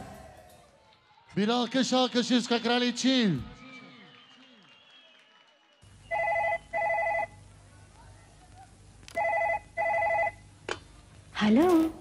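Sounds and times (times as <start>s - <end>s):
telephone ringing: 6.1s - 7.4s, 9.2s - 10.4s.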